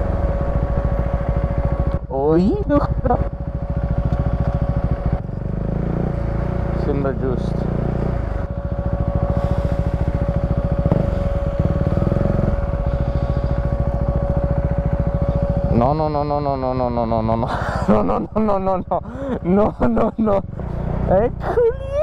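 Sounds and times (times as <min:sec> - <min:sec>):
steady high whine: 0:00.0 - 0:21.3
motorcycle engine running: 0:00.0 - 0:22.0.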